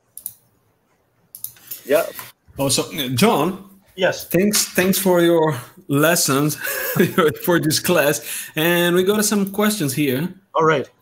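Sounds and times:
computer keyboard clicks: 0.2 - 0.4, 1.3 - 1.8
man speaking: 1.8 - 11.0.

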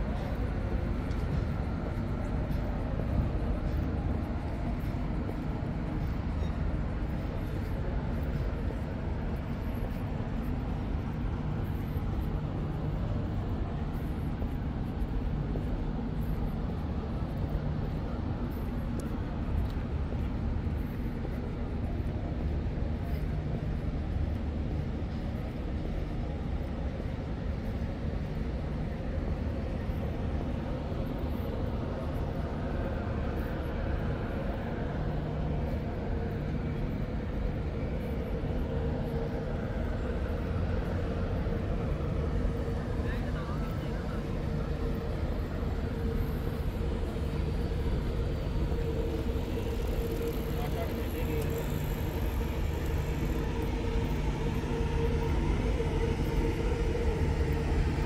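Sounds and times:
low hum: 0.0 - 58.0.

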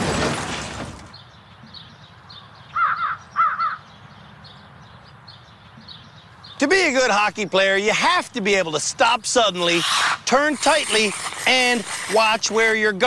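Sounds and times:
small birds chirping: 1.0 - 13.0
crow cawing: 2.7 - 3.9.

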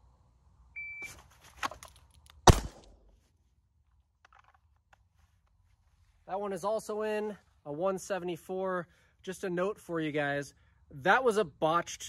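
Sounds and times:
revolver gunshot: 2.4 - 3.1.

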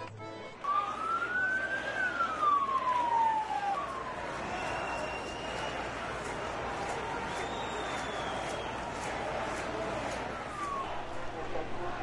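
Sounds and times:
accordion music: 0.0 - 1.0
street noise: 0.0 - 12.0
siren wailing: 0.6 - 4.2.

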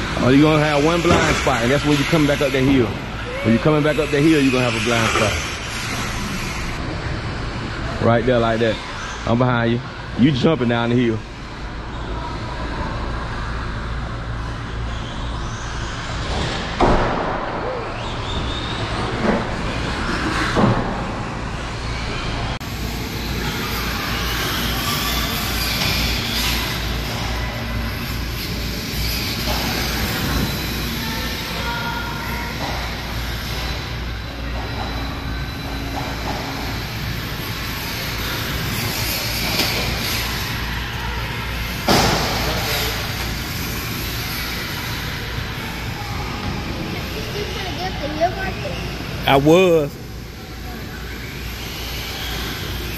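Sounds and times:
rc car motors and tyres: 0.0 - 52.9.

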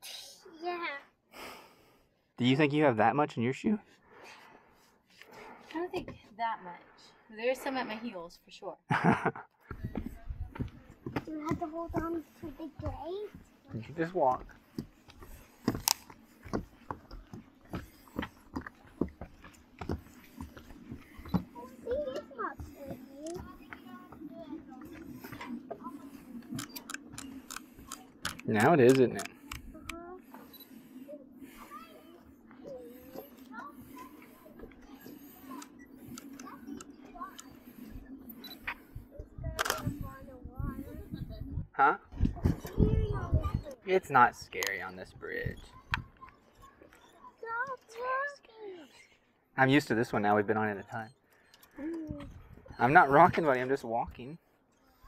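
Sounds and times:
footsteps on wooden deck: 9.6 - 41.2
faint voices: 9.6 - 43.9.

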